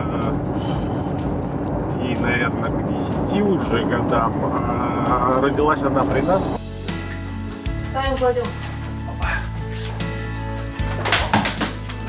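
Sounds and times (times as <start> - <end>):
background music: 0.0 - 12.0
car road and engine noise: 0.0 - 12.0.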